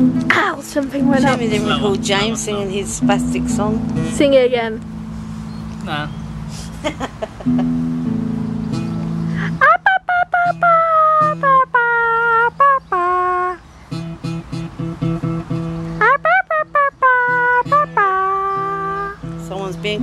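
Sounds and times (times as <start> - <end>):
high voice singing wordless tune: 0.0 - 4.6, 9.4 - 13.6, 16.0 - 19.2.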